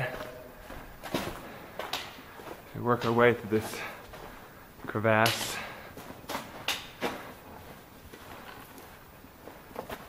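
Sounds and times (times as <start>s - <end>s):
faint scuffs of footsteps: 0.0s - 10.0s
footsteps crunching on sand: 0.0s - 10.0s.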